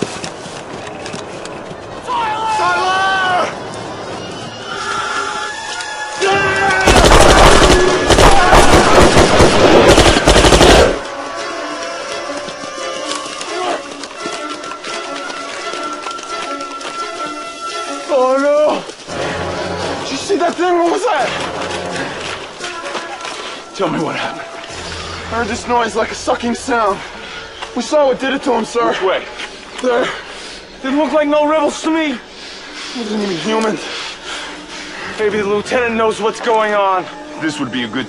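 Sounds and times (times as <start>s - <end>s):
dramatic score music: 0.0s - 38.0s
people shouting: 2.0s - 19.0s, 20.7s - 25.8s
automatic gunfire: 6.8s - 11.0s.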